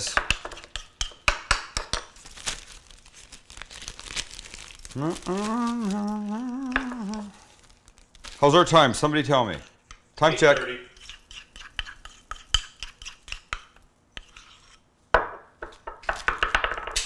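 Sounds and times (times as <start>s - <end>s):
plastic bag crinkling: 2.1s - 9.6s
person holding a long note: 4.9s - 7.6s.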